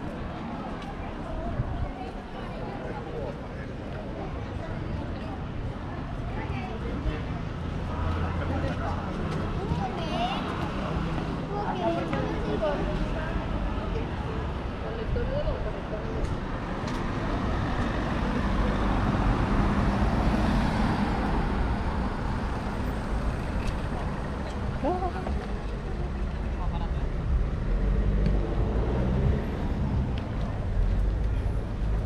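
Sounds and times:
road traffic passing: 0.0 - 32.0
voices of passers-by: 0.0 - 32.0.

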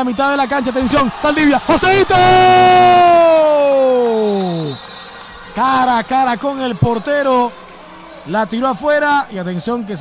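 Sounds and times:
man's drawn-out excited shout: 1.4 - 4.7.

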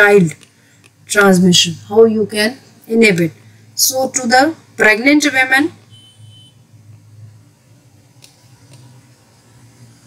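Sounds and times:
low electrical hum: 0.0 - 10.0
faint high-pitched tone: 5.9 - 6.6.

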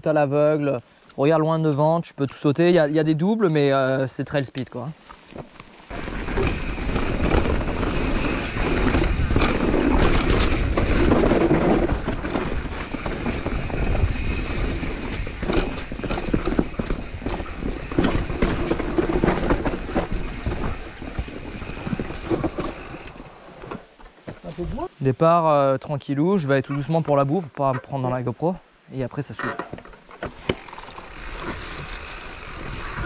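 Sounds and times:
bike tyres rolling over dirt: 3.8 - 24.7, 29.8 - 33.0
bike knocks and rattles: 5.3 - 24.4, 29.5 - 33.0.

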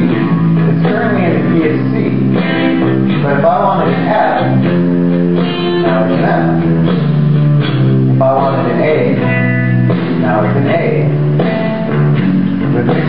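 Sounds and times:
drums bass and guitar groove: 0.0 - 13.0.

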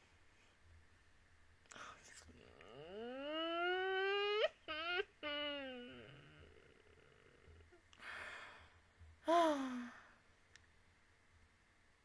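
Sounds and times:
woman's muffled vocal ooh: 2.4 - 7.8, 9.2 - 10.1.

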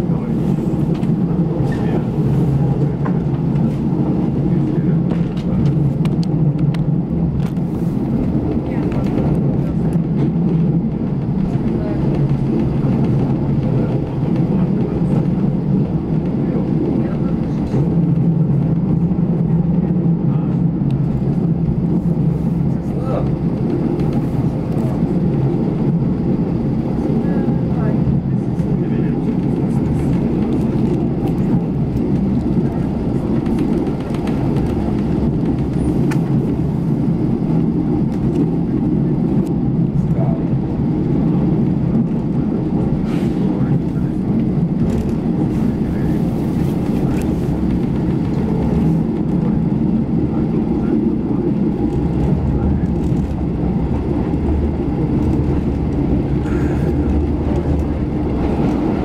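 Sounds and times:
diesel engine drone: 0.0 - 59.0
wheels rumbling on track: 0.0 - 59.0.

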